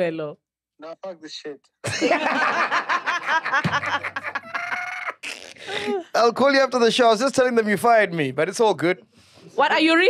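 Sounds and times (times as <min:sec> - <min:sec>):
man laughing in cackles: 0:01.9 - 0:06.0.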